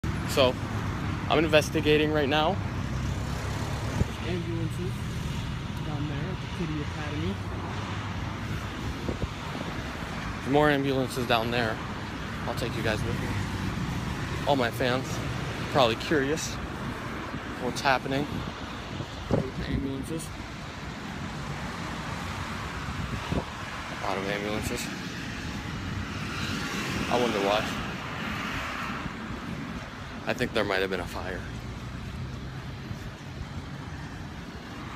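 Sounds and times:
road traffic hum: 0.0 - 34.9
wind buffeting microphone: 5.5 - 30.6.

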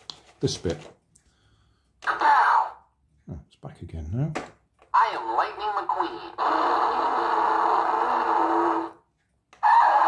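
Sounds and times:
distorted toy sound effect: 2.0 - 2.9, 5.0 - 9.0, 9.6 - 10.0.

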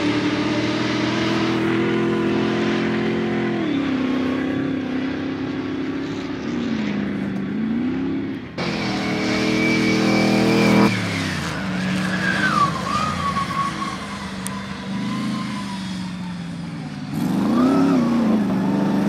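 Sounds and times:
off-road vehicle engine revving: 0.0 - 19.0.

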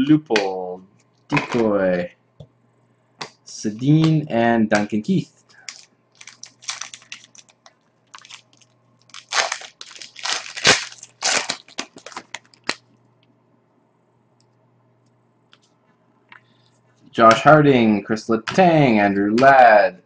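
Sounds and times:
wrapper crinkling and tearing: 5.6 - 12.8.

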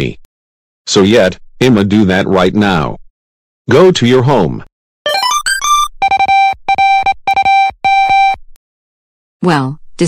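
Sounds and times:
electronic phone ring tone: 5.1 - 8.4.

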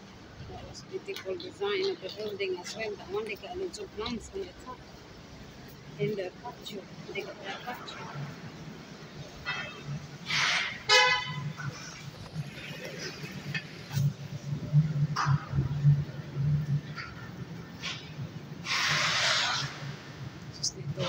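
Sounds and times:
vehicle horn toot: 9.4 - 11.7
hissing bursts: 18.6 - 20.0.

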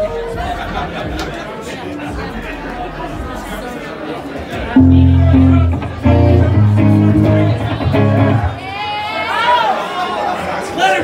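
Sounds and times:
crowd chatter: 0.0 - 11.0
live band playing: 4.7 - 8.8
electric guitar: 4.8 - 8.6
low bass notes: 4.8 - 8.6.

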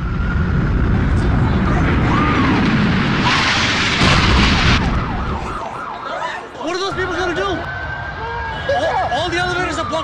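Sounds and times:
jet airliner flying overhead: 0.0 - 3.8.

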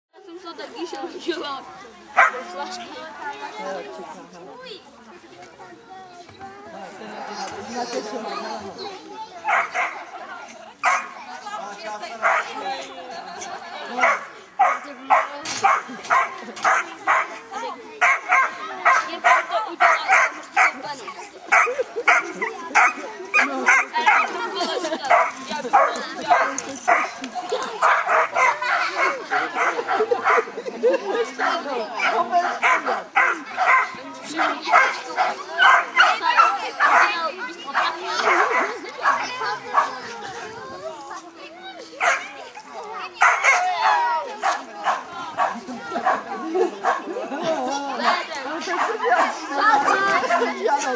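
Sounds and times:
dog barking: 2.2 - 2.4, 9.5 - 10.0, 10.8 - 11.1, 12.2 - 12.5, 14.0 - 17.3, 18.0 - 20.8, 21.5 - 24.3, 25.1 - 27.1, 27.8 - 30.5, 31.4 - 37.2, 37.8 - 39.9, 42.0 - 42.3, 43.2 - 46.2.

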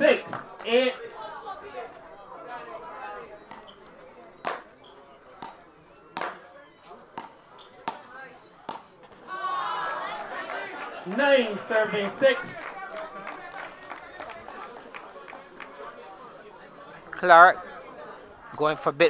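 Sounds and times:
crowd murmur: 0.0 - 19.0
paddles knocking tennis ball: 3.5 - 3.8, 4.4 - 4.7, 6.2 - 6.4, 7.1 - 9.2.

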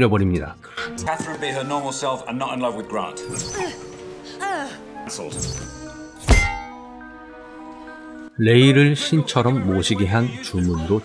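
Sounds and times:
background music: 0.0 - 11.0
loud thud: 6.2 - 6.8.

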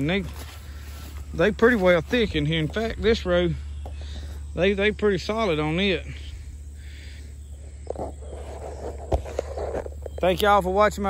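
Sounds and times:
steady low rumble: 0.0 - 10.2.

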